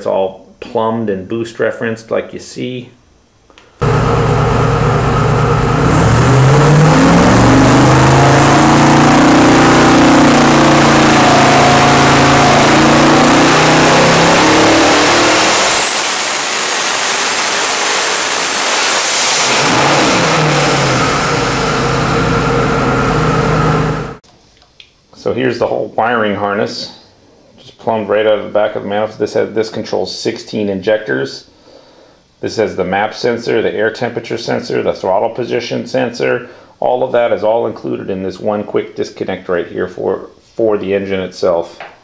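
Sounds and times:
car engine idling and revving: 3.8s - 24.2s
high turbo whistle: 3.8s - 24.2s.

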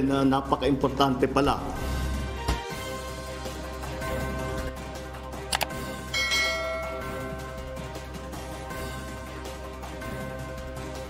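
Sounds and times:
background music: 0.0s - 11.0s
notification bell chime: 6.2s - 7.6s.

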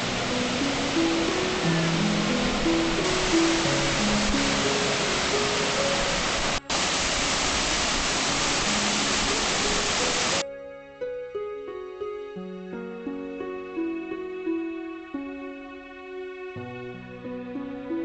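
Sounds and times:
soft background music: 0.0s - 6.9s, 8.3s - 18.0s
water rushing through sluices: 0.0s - 10.4s.

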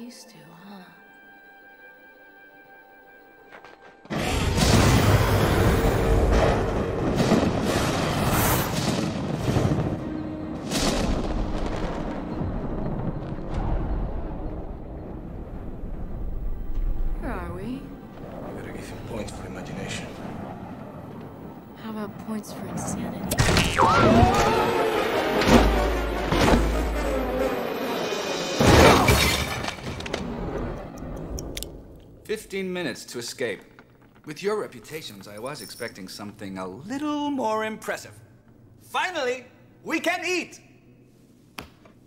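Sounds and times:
film music score: 0.0s - 41.6s
crockery shattering: 28.6s - 30.1s.

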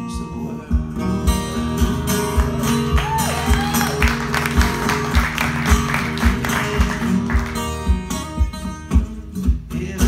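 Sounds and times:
acoustic guitars playing: 0.0s - 10.0s.

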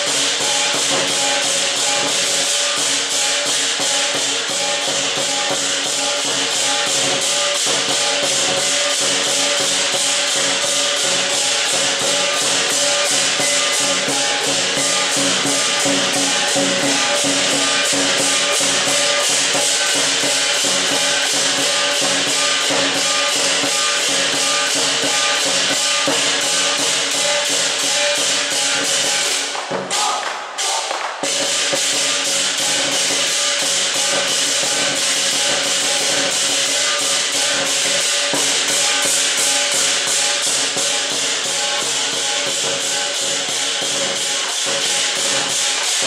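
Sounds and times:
cymbals clashing: 0.0s - 46.0s
drum beating fast: 0.0s - 46.0s.

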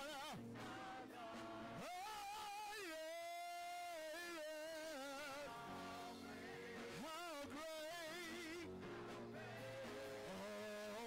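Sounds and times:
person singing gospel: 0.0s - 11.0s.

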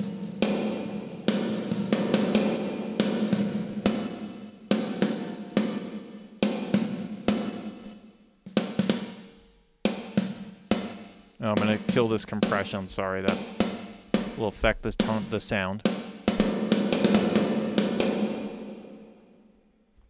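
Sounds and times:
drum kit hits with plate reverb: 0.0s - 8.0s, 9.9s - 19.2s.

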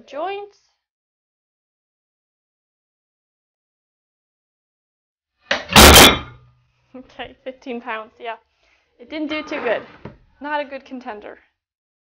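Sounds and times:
metal plates crashing on workbench: 5.5s - 6.4s.

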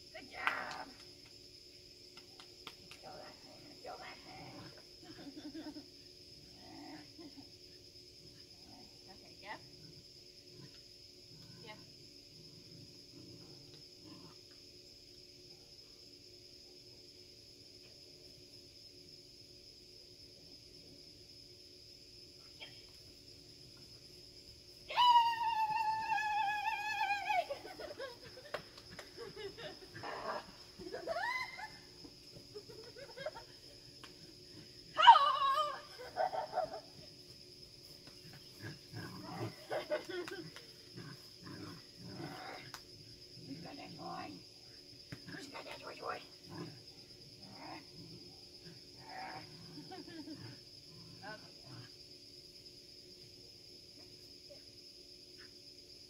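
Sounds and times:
insects shrilling: 21.3s - 56.0s.

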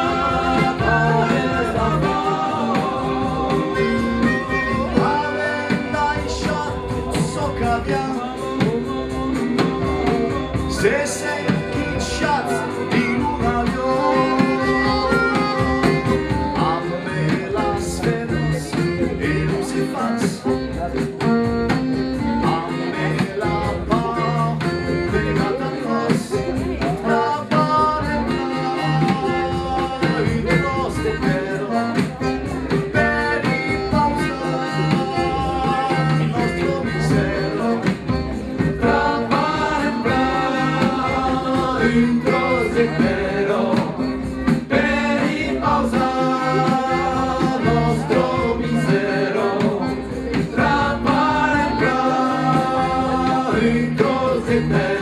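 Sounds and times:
button accordion chords: 0.0s - 55.0s
folk band playing: 0.0s - 55.0s
frame drum: 0.0s - 55.0s
strummed small guitar: 0.0s - 55.0s
voices singing: 0.0s - 55.0s.

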